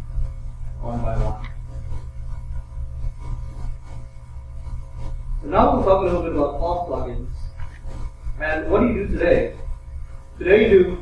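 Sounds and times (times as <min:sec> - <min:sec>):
faint thin steady tones: 0:00.0 - 0:11.0
steady low hum: 0:00.0 - 0:11.0.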